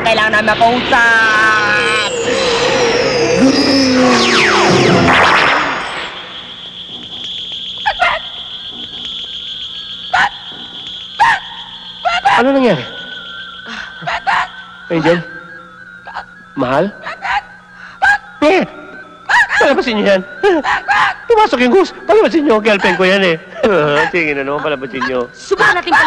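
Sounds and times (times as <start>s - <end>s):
steady high whine: 0.0s - 26.0s
warbling sliding electronic tones: 0.0s - 26.0s
short pitch-bending sounds: 0.9s - 6.6s.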